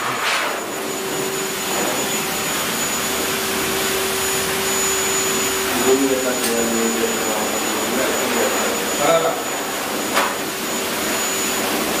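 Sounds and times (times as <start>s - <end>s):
pet dryer blowing air: 0.0s - 12.0s.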